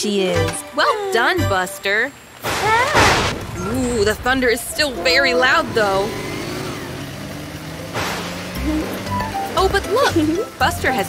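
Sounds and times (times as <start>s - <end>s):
rain hiss: 0.0s - 11.0s
cartoon vehicle engine hum: 3.4s - 11.0s.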